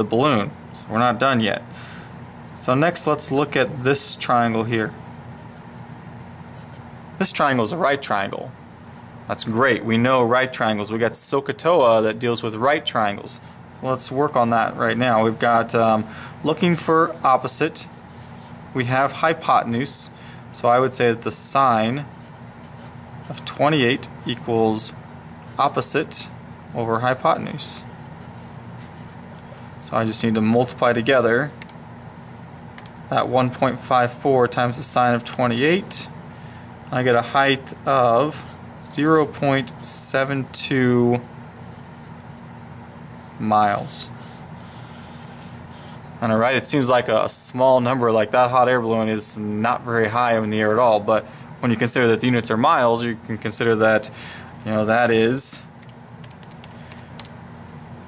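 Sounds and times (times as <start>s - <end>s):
marker scratching on paper: 5.2s - 6.9s, 17.9s - 18.6s, 21.7s - 23.6s, 27.9s - 29.8s, 41.6s - 42.4s, 44.1s - 46.0s
calculator keys clicking: 55.8s - 57.3s.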